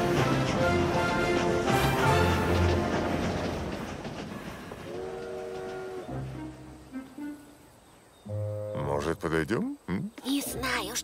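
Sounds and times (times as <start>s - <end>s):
train clattering on rails: 0.0s - 7.3s.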